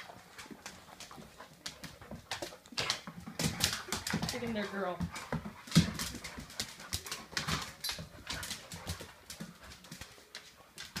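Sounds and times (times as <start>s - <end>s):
dog noises: 0.0s - 11.0s
dogs scuffling: 0.0s - 11.0s.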